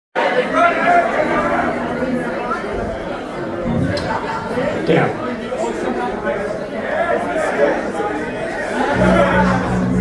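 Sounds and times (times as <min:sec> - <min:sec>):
crowd of voices talking: 0:00.2 - 0:10.0.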